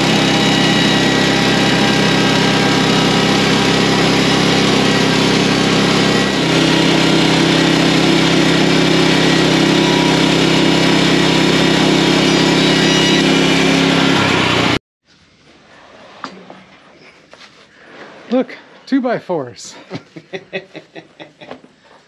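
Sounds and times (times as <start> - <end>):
band saw blade cutting wood: 0.0 - 14.8
gasoline engine under load: 0.0 - 14.8.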